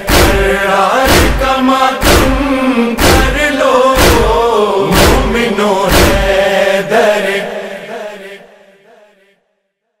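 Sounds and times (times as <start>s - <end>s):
drum beat: 0.0s - 3.4s, 4.0s - 6.4s
devotional chanting: 0.0s - 9.6s.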